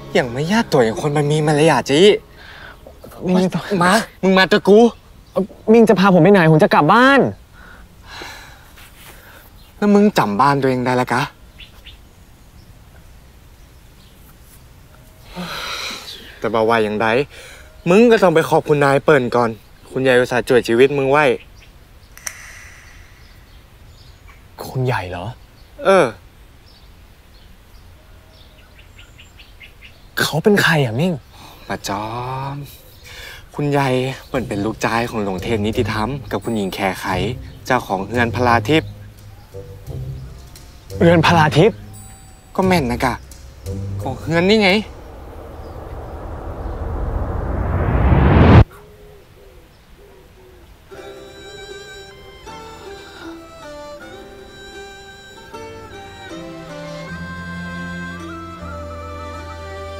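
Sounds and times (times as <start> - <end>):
faint bird chirp: 11.1 - 30.7, 31.3 - 47.7
rising whoosh: 22.2 - 24.1, 42.7 - 48.7
faint wavering low tones: 41.8 - 48.6.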